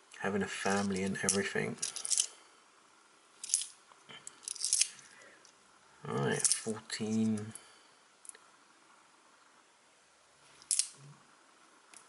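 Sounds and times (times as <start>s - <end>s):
coins clinking: 0.8s - 2.3s, 3.4s - 3.8s, 4.4s - 5.0s, 6.3s - 6.7s.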